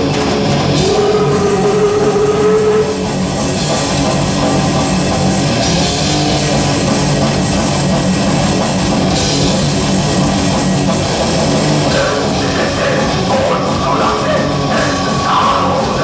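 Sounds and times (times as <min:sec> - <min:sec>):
heavy metal band playing: 0:00.0 - 0:16.0.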